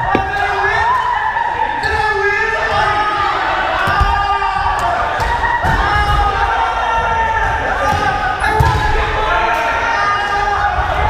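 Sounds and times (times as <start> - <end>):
rubber ball bouncing on wooden floor: 0.0 - 0.4.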